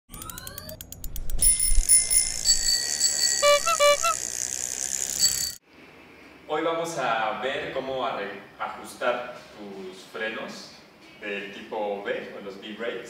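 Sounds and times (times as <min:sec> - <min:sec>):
slowing run of clicks: 0:00.1 - 0:03.1
high held tones: 0:00.1 - 0:05.6
bicycle bell ringing: 0:00.2 - 0:05.6.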